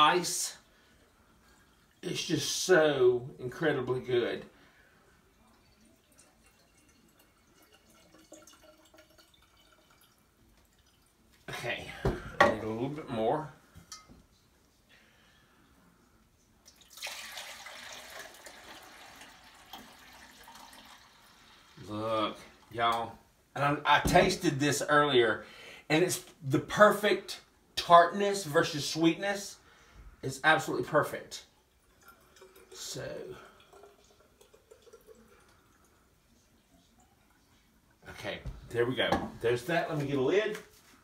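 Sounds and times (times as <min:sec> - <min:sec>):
liquid pouring into a pitcher: 0:03.4 - 0:11.6, 0:16.6 - 0:22.8, 0:30.6 - 0:37.9.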